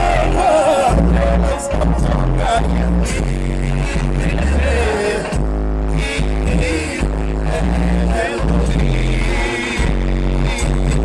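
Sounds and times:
wavering sung vocal: 0:00.0 - 0:05.4, 0:06.2 - 0:10.0
bass-heavy song on car stereo: 0:00.0 - 0:11.0.

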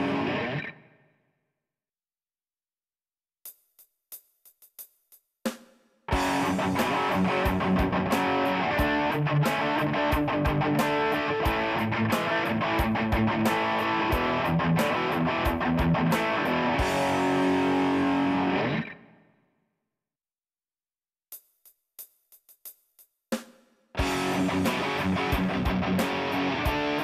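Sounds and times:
distorted electric guitar riff: 0:00.0 - 0:01.0, 0:06.1 - 0:19.2, 0:24.0 - 0:27.0
drum kit: 0:03.5 - 0:18.5, 0:21.3 - 0:27.0.

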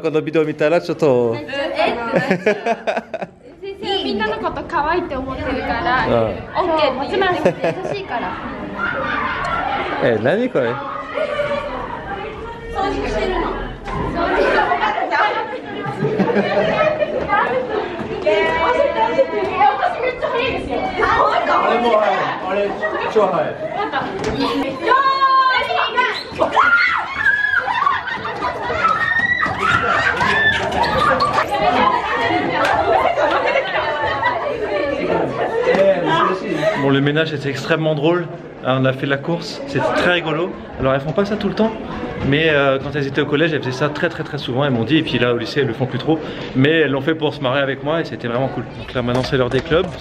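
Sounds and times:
schoolgirls chattering: 0:00.0 - 0:50.0.

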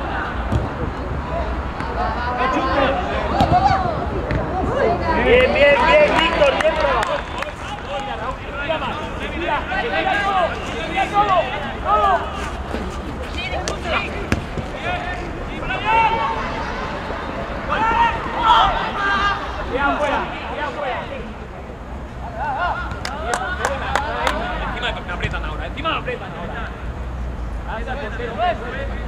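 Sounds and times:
people shouting and calling: 0:01.9 - 0:20.7.

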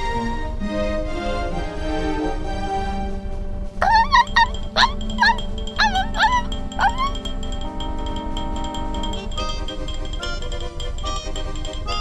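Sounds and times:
orchestral background music: 0:00.0 - 0:12.0
cartoon puppy yipping: 0:03.8 - 0:09.4.

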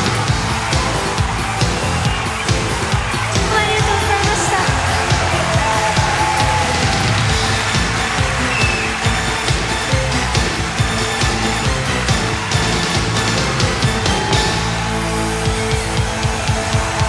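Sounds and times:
pop-rock band playing: 0:00.0 - 0:17.0
steady drum beat: 0:00.0 - 0:17.0.

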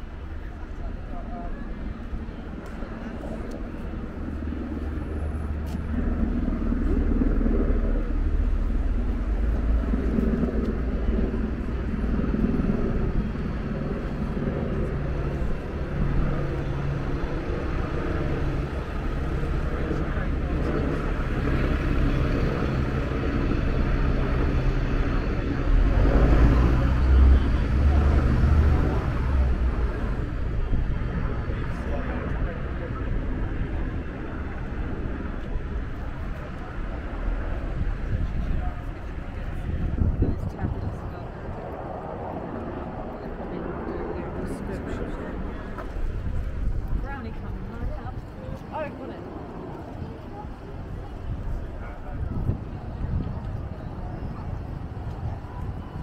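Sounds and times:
other vehicles: 0:00.0 - 0:56.0
voices of passers-by: 0:00.0 - 0:56.0
bus engine passing: 0:21.1 - 0:30.7.

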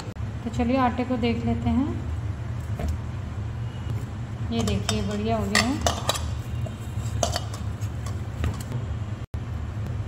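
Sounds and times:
low background hum: 0:00.0 - 0:10.0
hands tapping steel bowl: 0:04.6 - 0:08.7.

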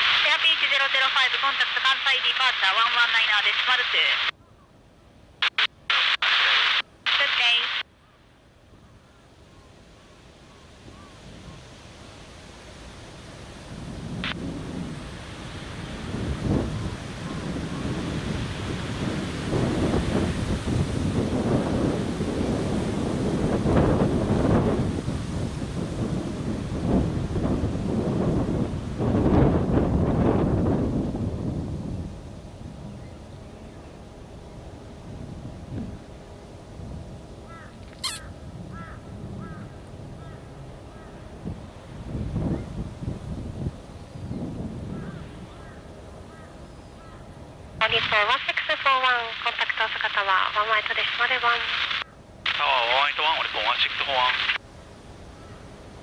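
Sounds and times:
wind gusting across microphone: 0:08.6 - 0:56.0.

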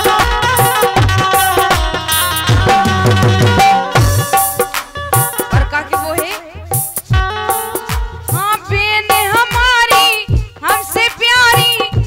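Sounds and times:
dholak drum strokes: 0:00.0 - 0:12.0
harmonium notes: 0:00.0 - 0:12.0.

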